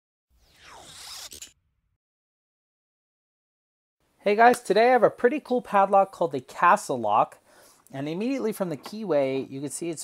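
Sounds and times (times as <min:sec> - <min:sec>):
downward swoosh sound effect: 0:00.4 - 0:01.6.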